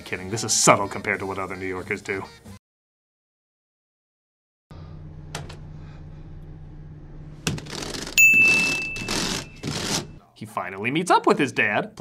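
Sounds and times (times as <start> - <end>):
bright bell ding: 8.2 - 9.6.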